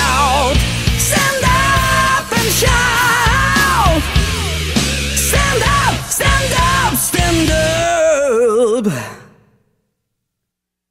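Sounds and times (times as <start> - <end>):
man singing with vibrato: 0.0 - 4.4, 5.2 - 9.3.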